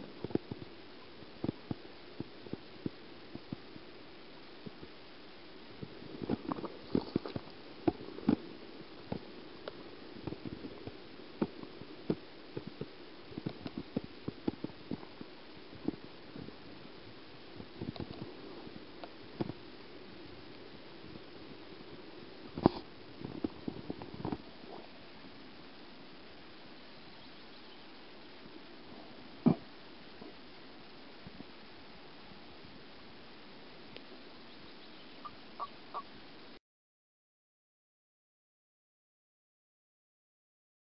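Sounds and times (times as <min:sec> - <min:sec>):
faint steady hiss: 0:00.0 - 0:36.6
small water sounds: 0:00.0 - 0:36.6
toads croaking: 0:34.4 - 0:36.1.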